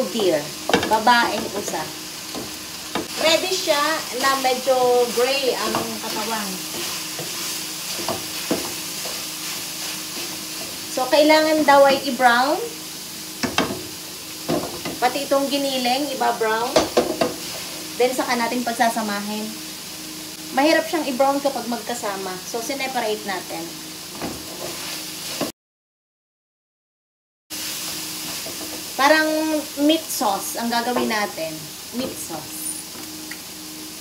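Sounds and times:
meat sizzling in frying pans: 0.0s - 25.5s, 27.5s - 34.0s
wooden spatula stirring: 2.3s - 11.0s.

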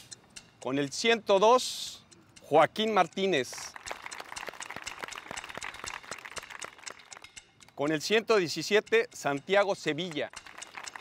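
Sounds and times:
children clapping: 3.7s - 7.3s, 10.4s - 11.0s.

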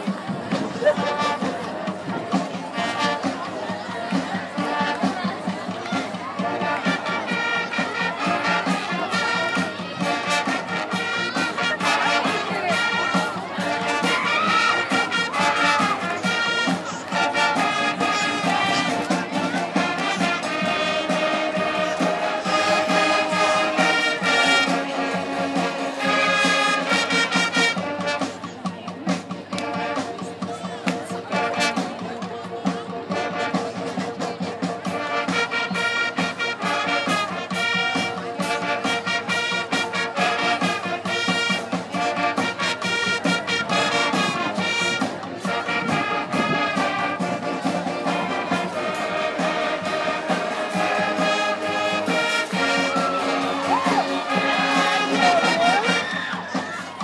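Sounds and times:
marching band playing: 0.0s - 57.0s.

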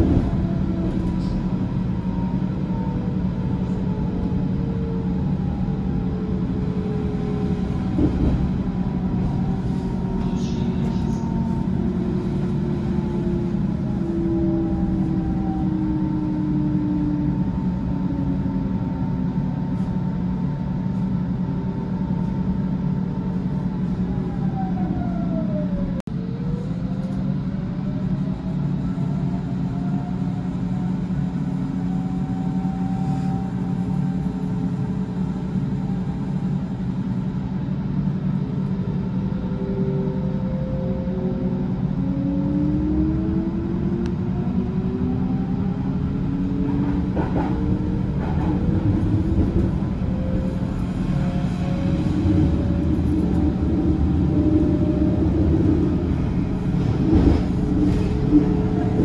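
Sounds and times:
train running rumble: 0.0s - 59.0s.

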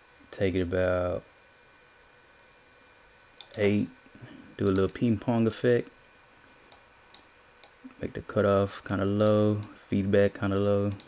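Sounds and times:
room hiss: 0.0s - 11.0s
computer mouse clicks: 4.6s - 5.0s.

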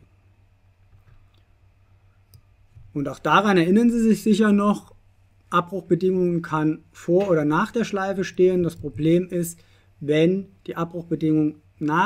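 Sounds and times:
man speaking: 2.9s - 12.0s.

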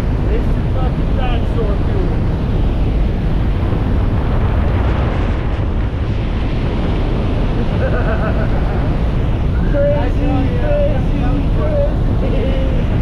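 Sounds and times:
propeller plane engine: 0.0s - 13.0s
wind buffeting microphone: 0.0s - 13.0s
wind rushing: 0.0s - 13.0s.

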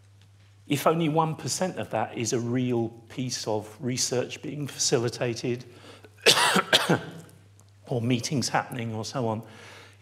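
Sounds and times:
man coughing: 6.2s - 7.3s.

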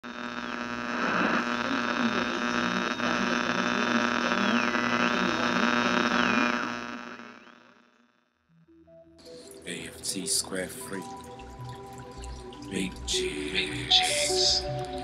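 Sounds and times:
electronic humming buzz: 0.0s - 7.9s.

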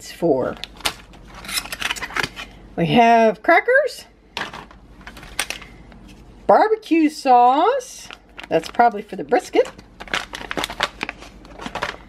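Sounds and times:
ration pouches rustling and crinkling: 8.0s - 12.0s.

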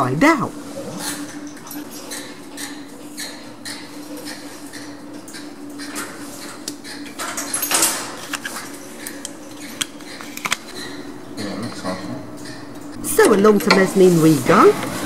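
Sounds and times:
lift car humming: 12.6s - 15.0s.

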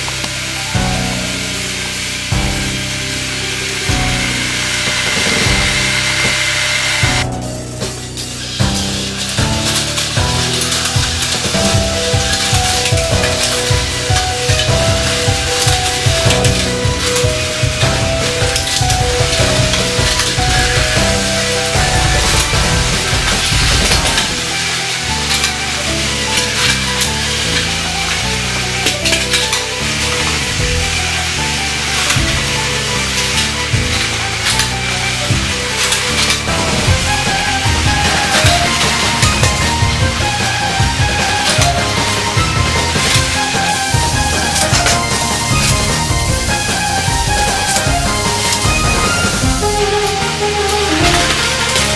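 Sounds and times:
background music: 0.0s - 51.9s
toy trains whirring and rattling: 0.0s - 51.9s
wheels clicking over rail joints: 0.0s - 51.9s.

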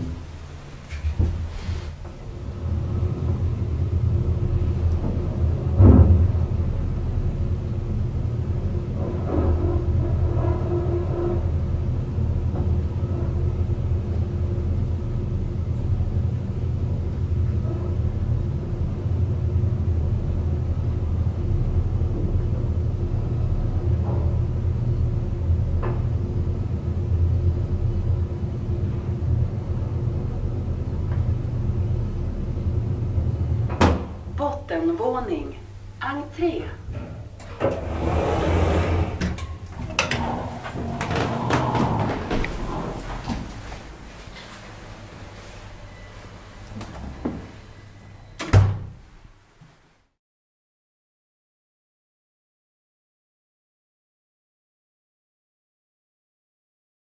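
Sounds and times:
elevator low rumble and hum: 0.0s - 50.2s
elevator knock: 4.6s - 6.8s, 36.6s - 44.8s.

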